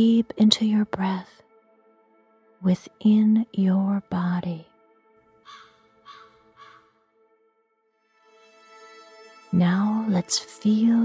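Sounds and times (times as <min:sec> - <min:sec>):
ambient music pad: 0:00.0 - 0:11.0
harsh cawing calls: 0:05.4 - 0:07.0.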